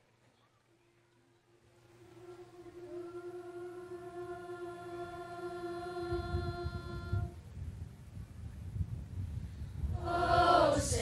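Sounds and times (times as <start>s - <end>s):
choir singing a cappella: 2.0s - 7.3s, 9.9s - 11.0s.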